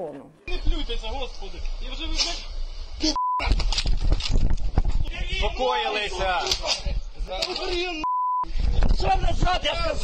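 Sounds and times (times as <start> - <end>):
people arguing and shouting: 0.0 - 10.0
censor bleep: 3.2 - 3.5, 8.0 - 8.5.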